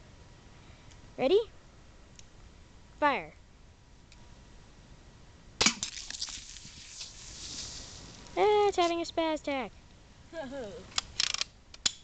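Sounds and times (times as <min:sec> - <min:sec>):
soda can bursting crack: 0:05.6 - 0:08.3
soda spraying hiss: 0:06.0 - 0:09.0.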